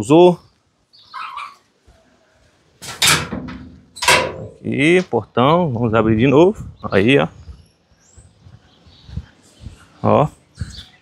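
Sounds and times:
gate scraping and rattling: 2.8 - 5.1.

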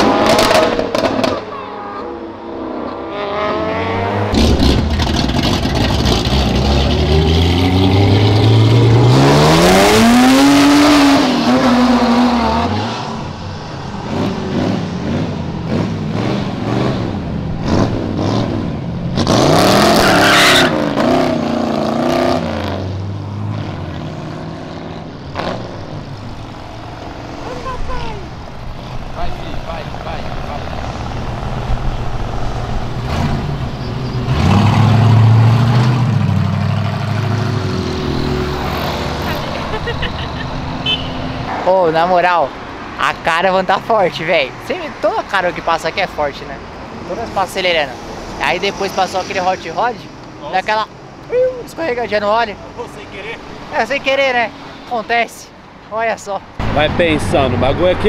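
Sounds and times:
hot rod revving: 0.0 - 1.5, 3.1 - 42.6
car engines revving: 0.0 - 58.0
traffic noise: 0.0 - 58.0
sports car accelerating away: 3.0 - 13.3, 13.9 - 27.4, 30.2 - 39.8.

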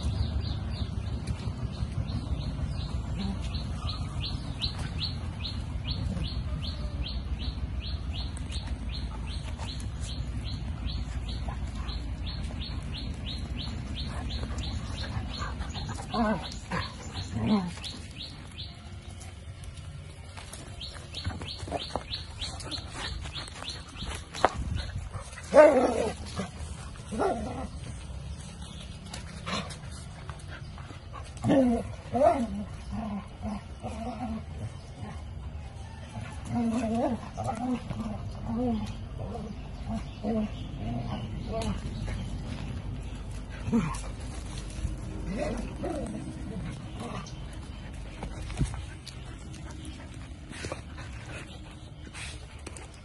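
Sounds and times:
dogs scuffling: 8.2 - 32.8, 40.7 - 53.0
dogs barking: 24.9 - 28.0.

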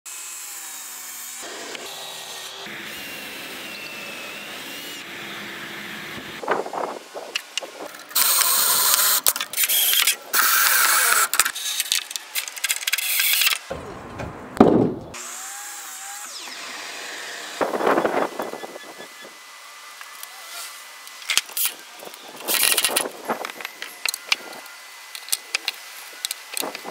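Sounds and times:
power drill driving screws: 0.4 - 6.4, 8.2 - 13.7
wood knocking: 13.7 - 15.2.

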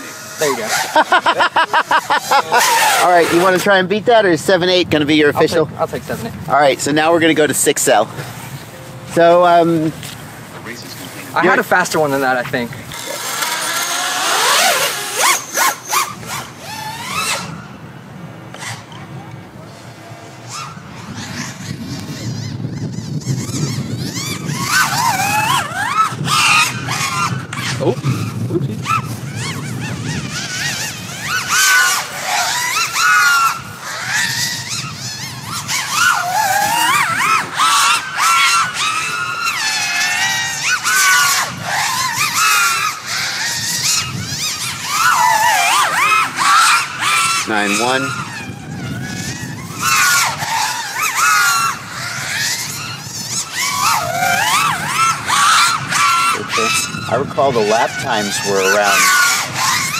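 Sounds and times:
racing drone motors whining: 0.0 - 59.9.

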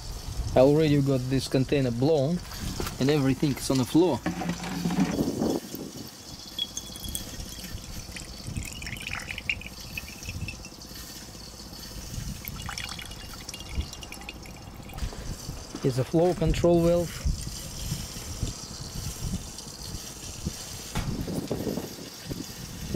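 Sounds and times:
liquid trickling into glass: 3.4 - 15.8
wind buffeting microphone: 4.8 - 10.7, 12.0 - 22.9.

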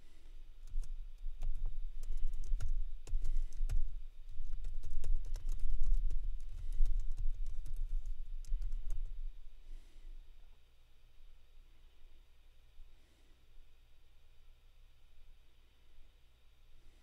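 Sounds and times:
typing on computer keyboard: 0.6 - 9.1.

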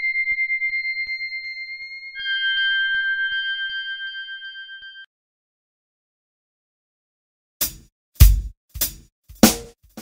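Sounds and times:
high chime-like tones: 0.0 - 5.1.

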